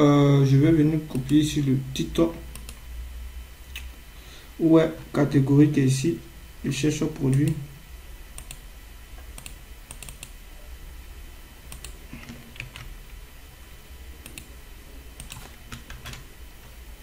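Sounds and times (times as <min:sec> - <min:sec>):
keyboard and mouse clicks: 0:02.5 - 0:02.8, 0:08.4 - 0:08.6, 0:09.2 - 0:10.3, 0:11.7 - 0:12.9, 0:14.2 - 0:14.5, 0:15.2 - 0:16.3.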